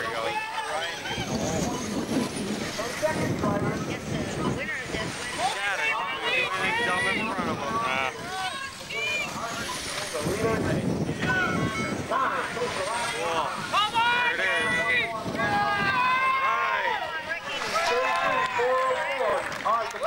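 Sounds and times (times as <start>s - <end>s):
electric rc cars whining: 0.0s - 18.8s
spectators calling out: 4.2s - 20.0s.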